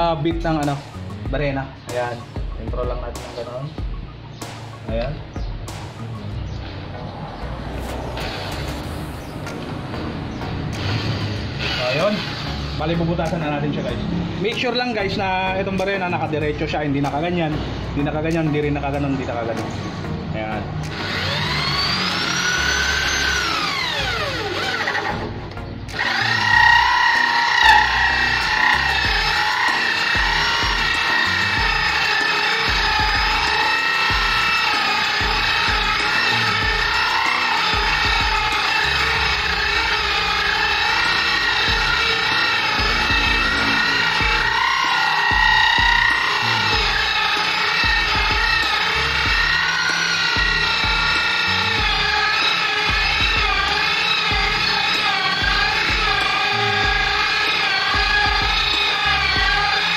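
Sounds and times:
electric drill cutting wood: 0:07.8 - 0:09.7, 0:10.6 - 0:13.8, 0:20.8 - 0:59.9.

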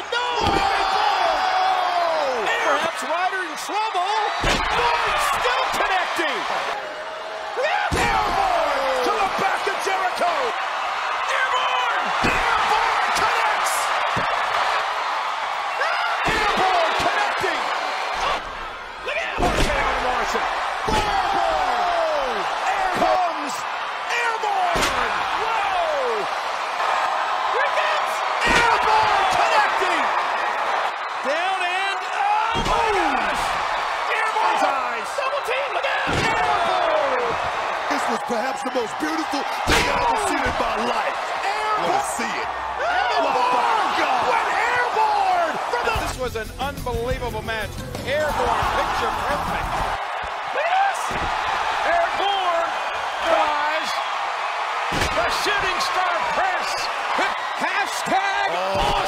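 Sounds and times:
arena crowd noise and voices: 0:00.0 - 0:59.0.

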